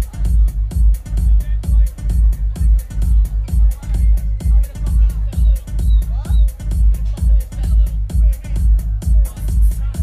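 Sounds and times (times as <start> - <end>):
heavy kick drum: 0.0 - 10.0
hi-hats: 0.0 - 10.0
house music over sound system: 0.0 - 10.0.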